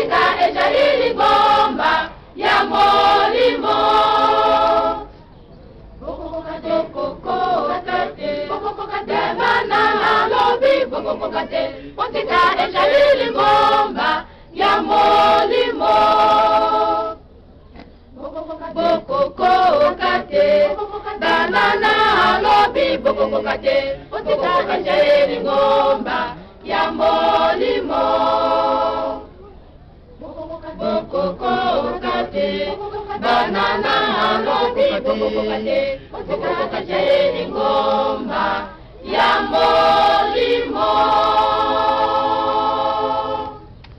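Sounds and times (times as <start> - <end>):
choir singing: 0.0 - 5.2, 6.0 - 17.2, 18.1 - 29.3, 30.2 - 43.8.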